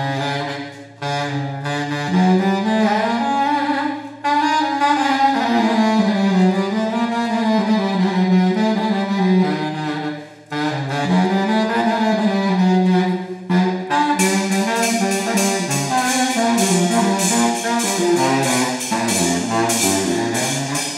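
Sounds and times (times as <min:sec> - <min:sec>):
baritone saxophone low held notes: 0:00.0 - 0:20.9.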